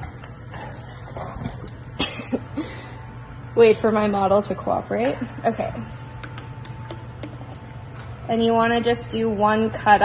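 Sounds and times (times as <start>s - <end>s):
background hum: 0.0s - 10.0s.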